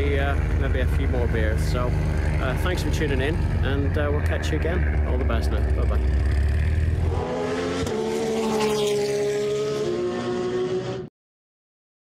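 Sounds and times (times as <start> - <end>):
engine running: 0.0 - 10.9.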